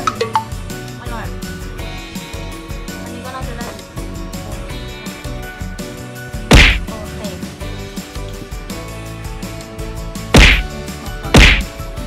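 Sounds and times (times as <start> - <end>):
background music: 0.0 - 12.0
sharp loud whack: 6.5 - 6.9, 10.4 - 10.7, 11.4 - 11.8.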